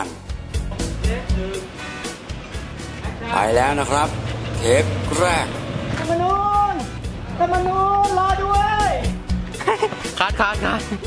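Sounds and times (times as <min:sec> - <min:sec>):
background music: 0:00.0 - 0:11.0
man speaking: 0:03.3 - 0:05.6.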